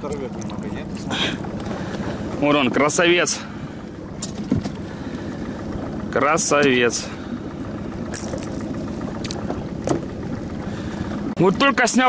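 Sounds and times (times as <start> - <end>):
low rumble: 0.0 - 11.8
fishing lure hooks rattling: 8.1 - 9.4.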